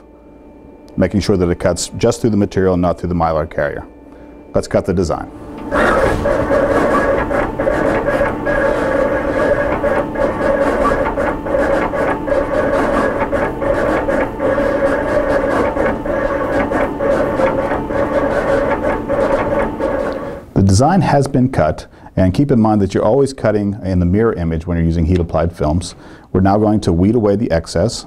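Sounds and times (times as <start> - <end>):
vinyl cutter motor whine: 0.0 - 21.3.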